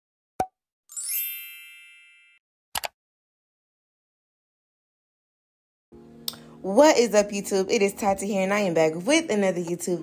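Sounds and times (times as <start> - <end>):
shimmering chime: 0.9 - 2.4.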